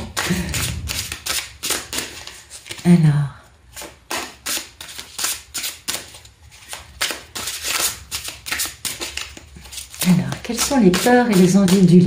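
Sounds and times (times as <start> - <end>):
cards being shuffled by hand: 0.0 - 3.0, 3.7 - 12.0.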